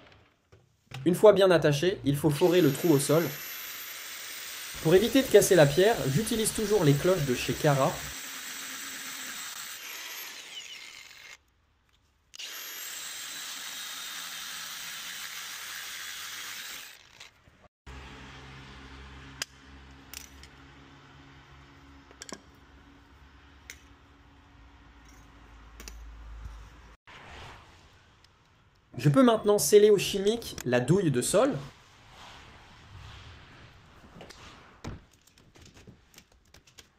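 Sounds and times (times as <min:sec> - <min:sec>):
drill grinding into stone: 0:02.4 - 0:11.4, 0:12.4 - 0:17.4.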